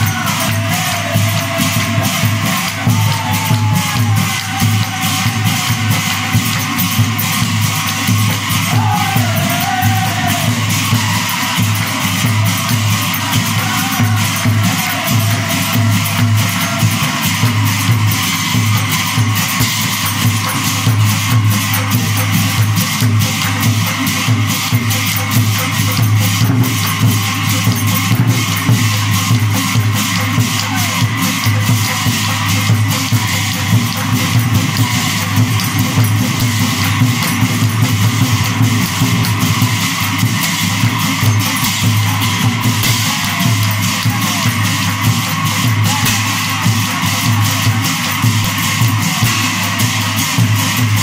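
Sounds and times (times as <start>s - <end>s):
group of voices singing: 0.0s - 6.8s, 8.3s - 18.5s, 45.6s - 49.6s
hand cymbals striking: 0.0s - 51.0s.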